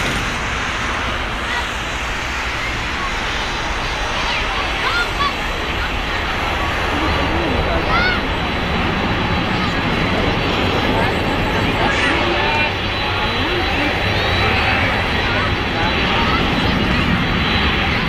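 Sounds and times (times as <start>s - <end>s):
high jet whine: 0.0s - 18.0s
jet engines rumbling: 0.0s - 18.0s.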